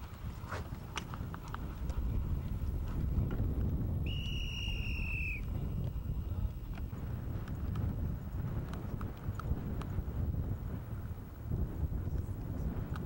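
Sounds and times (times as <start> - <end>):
wind rumble on microphone: 0.0 - 13.0
whistle blown: 4.0 - 5.6.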